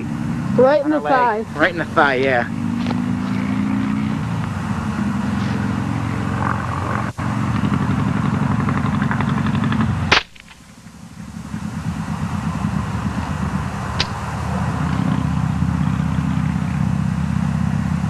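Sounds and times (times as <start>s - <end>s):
low motor drone: 0.0s - 18.0s
gunshot: 10.1s - 10.6s, 14.0s - 14.2s.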